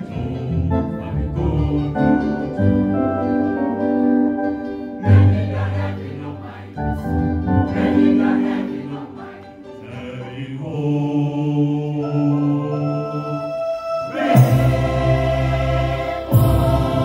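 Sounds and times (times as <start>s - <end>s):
mixed choir singing: 0.0s - 2.8s, 4.9s - 17.0s
keyboard accompaniment: 0.0s - 17.0s.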